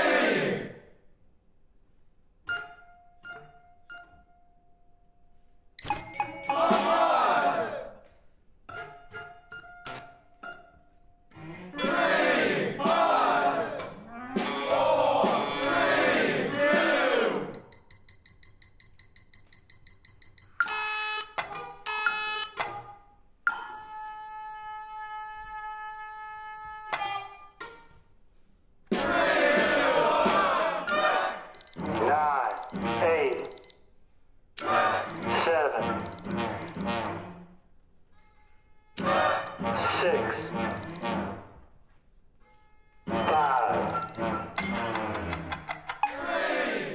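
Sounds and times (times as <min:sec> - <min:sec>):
rapid high beeping: 0:31.6 - 0:33.8, 0:34.7 - 0:37.2, 0:39.1 - 0:41.1, 0:43.2 - 0:44.6
voice-like sounds: 0:43.1 - 0:44.0.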